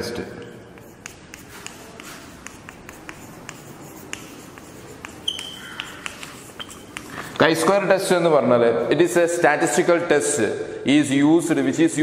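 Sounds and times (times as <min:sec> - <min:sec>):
chalk tapping and scraping: 0:00.0 - 0:07.9
chalk squeak: 0:00.2 - 0:07.7.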